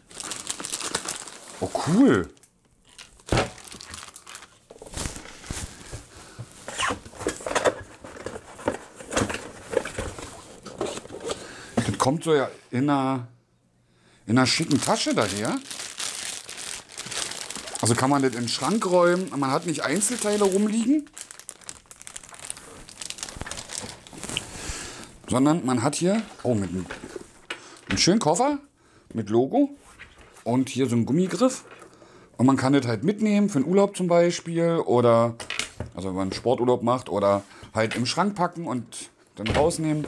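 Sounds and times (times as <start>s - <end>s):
plastic bag crinkling: 0.0s - 8.7s, 14.4s - 25.3s.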